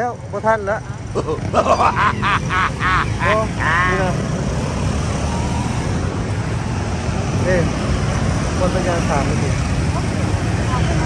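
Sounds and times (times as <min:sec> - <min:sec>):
motorcycles and cars passing: 0:00.0 - 0:11.0.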